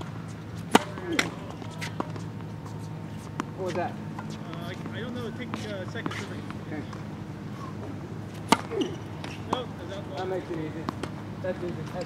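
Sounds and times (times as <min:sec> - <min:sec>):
tennis ball pop: 0:00.7 - 0:02.2, 0:08.4 - 0:09.6.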